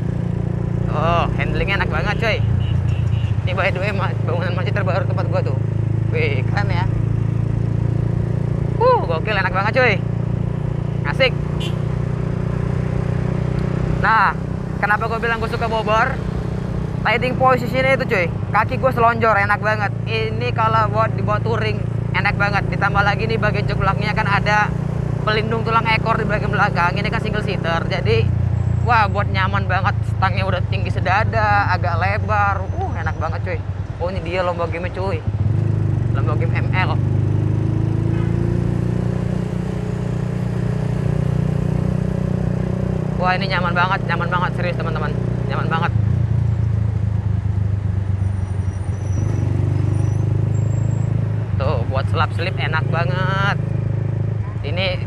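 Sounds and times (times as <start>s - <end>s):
motorcycle engine droning: 0.0s - 55.0s.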